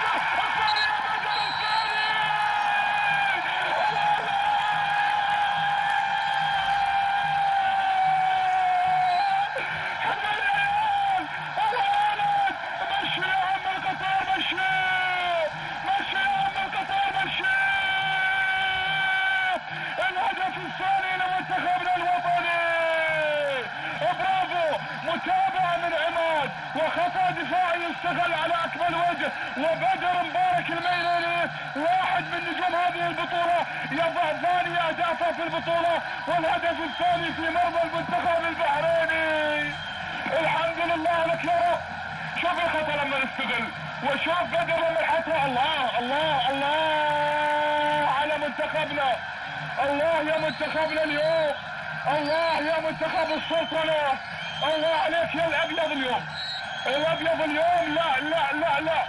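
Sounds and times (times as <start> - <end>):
stadium crowd noise: 0.0 - 59.0
voices crying out in celebration: 0.0 - 59.0.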